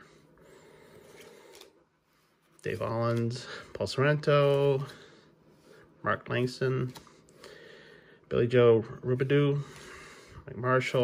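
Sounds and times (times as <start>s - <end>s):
trading cards rustling: 0.9s - 5.1s.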